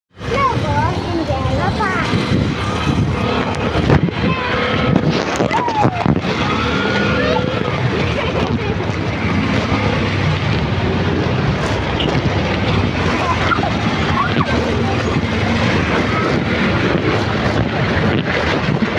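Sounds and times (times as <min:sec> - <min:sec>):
people talking: 0:00.2 - 0:18.9
small motorcycle engine rumbling: 0:00.2 - 0:18.9.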